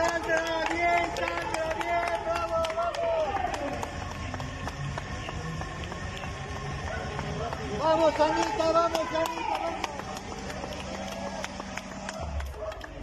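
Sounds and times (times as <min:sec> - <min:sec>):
crowd noise: 0:00.0 - 0:13.0
people clapping: 0:00.0 - 0:13.0.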